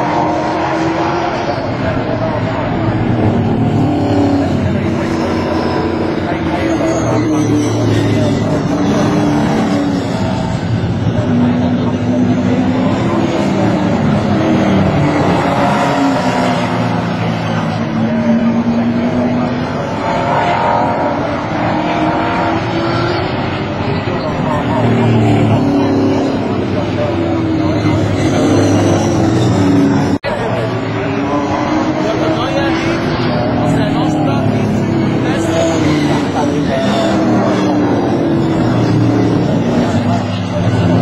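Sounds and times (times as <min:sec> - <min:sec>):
racing car engines: 0:00.0 - 0:41.0.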